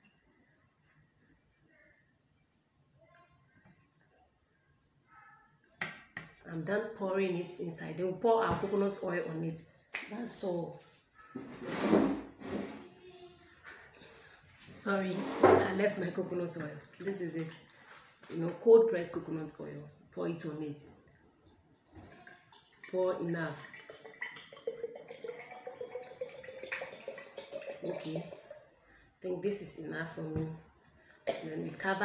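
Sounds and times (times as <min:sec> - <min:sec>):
plastic chair scraping: 0:11.4 - 0:12.9, 0:15.0 - 0:15.8
oil pouring into a glass jar: 0:22.0 - 0:28.7.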